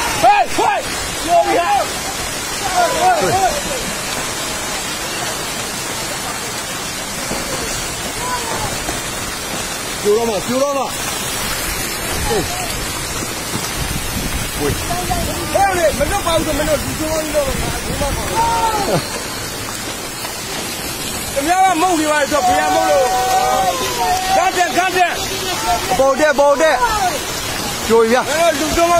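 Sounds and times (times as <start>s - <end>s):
faint shouting voices: 0.0s - 4.1s, 7.3s - 9.0s, 14.8s - 19.7s, 21.3s - 28.9s
landslide debris rushing: 0.0s - 28.9s.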